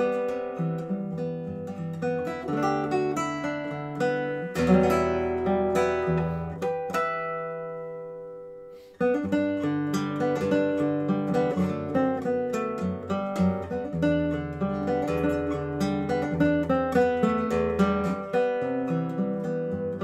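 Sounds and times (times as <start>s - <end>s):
fingerstyle classical guitar: 0.0s - 20.0s.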